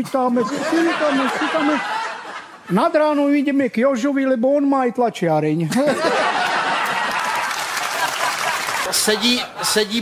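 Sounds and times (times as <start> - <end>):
audience laughter: 0.2 - 2.7, 5.7 - 10.0
studio audience applauding: 6.4 - 9.4.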